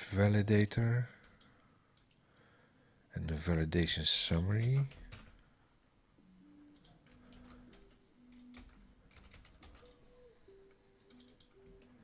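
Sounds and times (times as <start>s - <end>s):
faint keyboard typing: 1.1s - 2.2s, 4.5s - 5.5s, 6.6s - 12.0s.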